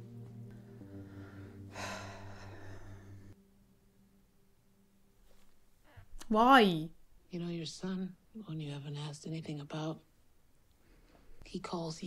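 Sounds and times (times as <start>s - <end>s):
person gasping: 1.0s - 3.4s.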